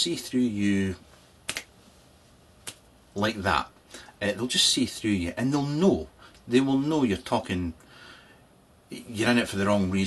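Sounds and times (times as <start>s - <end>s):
finger snaps: 1.5s - 1.7s, 2.6s - 2.9s.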